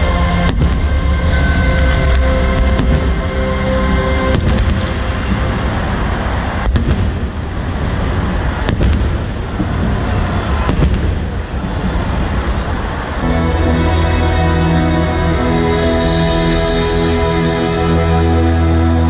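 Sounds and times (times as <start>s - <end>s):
loud music: 0.0s - 7.2s, 13.2s - 19.0s
fireworks crackling: 0.0s - 15.4s
firework bangs: 0.1s - 13.2s.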